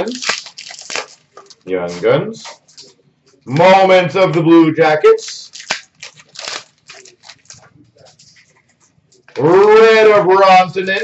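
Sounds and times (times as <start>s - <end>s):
cards rustling and flicking: 0.0s - 1.6s, 5.3s - 8.9s.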